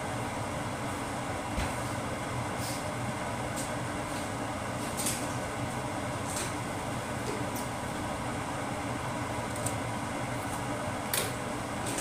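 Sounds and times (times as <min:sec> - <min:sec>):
kitchen fan whirring: 0:00.0 - 0:12.0.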